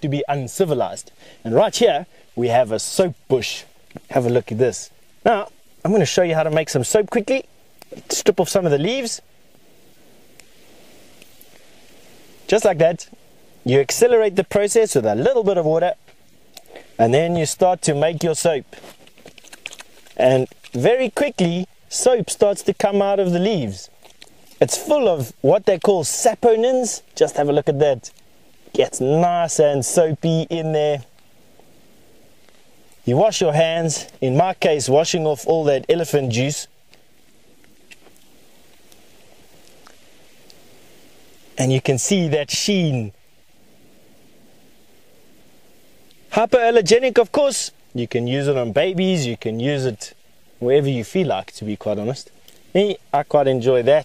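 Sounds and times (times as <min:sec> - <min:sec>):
leaves rustling: 0:00.0 - 0:54.0
small ticks: 0:18.7 - 0:20.8, 0:24.0 - 0:24.6, 0:28.1 - 0:28.7, 0:36.9 - 0:40.7, 0:52.3 - 0:52.7
small twig snaps: 0:18.8 - 0:20.8, 0:24.0 - 0:24.6, 0:36.9 - 0:39.0, 0:39.6 - 0:40.6.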